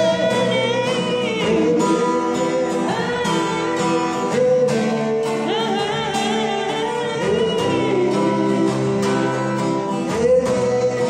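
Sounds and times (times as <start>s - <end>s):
acoustic guitar strumming: 0.0s - 11.0s
man singing: 0.0s - 11.0s.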